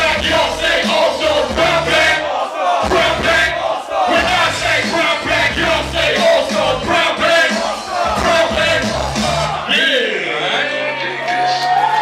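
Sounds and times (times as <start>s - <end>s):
hip-hop beat: 0.0s - 9.8s
crowd voices: 0.0s - 12.0s
rappers shouting into microphones: 0.0s - 12.0s.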